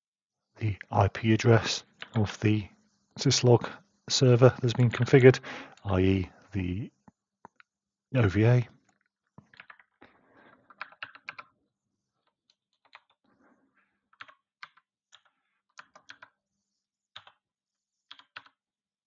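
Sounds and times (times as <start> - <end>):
computer keyboard keystrokes: 2.0 - 2.2, 9.4 - 10.0, 10.7 - 11.5, 12.2 - 13.2, 14.1 - 16.3, 17.2 - 17.4, 18.1 - 18.6.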